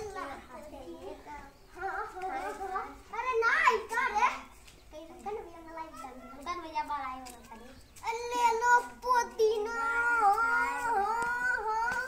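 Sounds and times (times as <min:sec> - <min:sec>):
boy singing long notes: 0:08.5 - 0:12.0.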